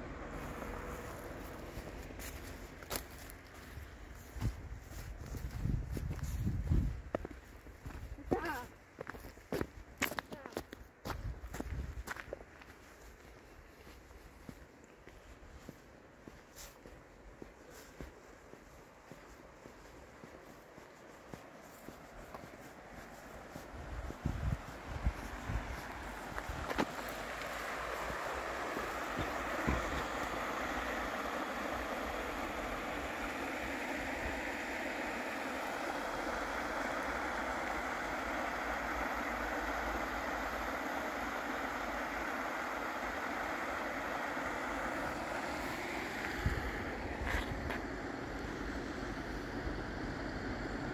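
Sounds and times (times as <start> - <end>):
river rushing over stones: 24.7 - 48.7.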